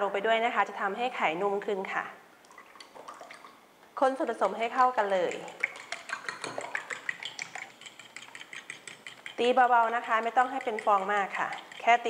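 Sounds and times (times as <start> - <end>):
spoon clinking against bowl: 5.3 - 12.0.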